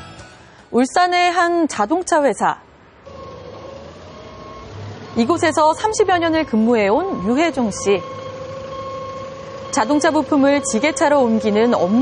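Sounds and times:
vehicle engines humming: 2.9 - 12.0
forklift engine rumble: 3.0 - 12.0.

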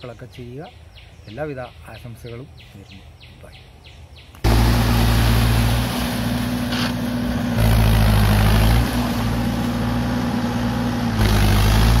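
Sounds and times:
tractor engine running: 4.4 - 12.0.

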